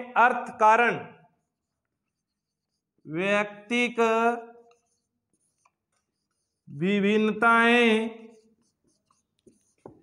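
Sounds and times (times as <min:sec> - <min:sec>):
marker writing on whiteboard: 0:00.2 - 0:10.0
man's voice: 0:03.1 - 0:04.6, 0:06.7 - 0:08.3.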